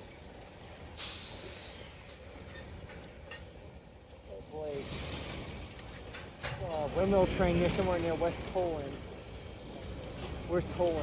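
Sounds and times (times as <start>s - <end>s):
train wheels rumbling on rails: 0.0s - 11.0s
brief hiss: 1.0s - 2.0s.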